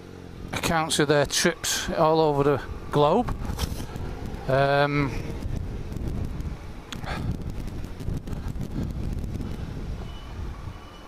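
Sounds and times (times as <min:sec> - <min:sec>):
motorcycle engine rumble: 0:00.0 - 0:11.0
wind buffeting microphone: 0:00.4 - 0:11.0.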